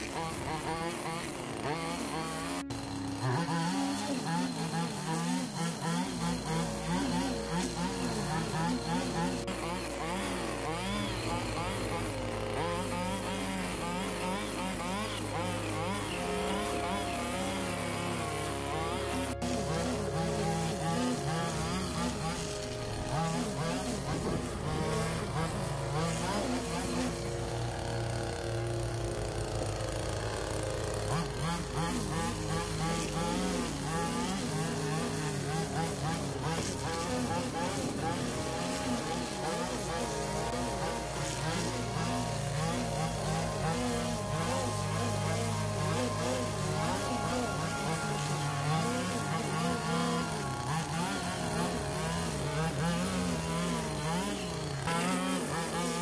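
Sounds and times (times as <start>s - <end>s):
line trimmer engine running: 0.0s - 56.0s.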